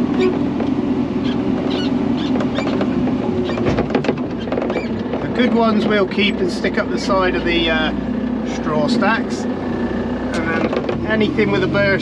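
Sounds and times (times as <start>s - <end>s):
cab rattles and clicks: 0.0s - 6.3s, 10.3s - 11.3s
tractor diesel engine running: 0.0s - 12.0s.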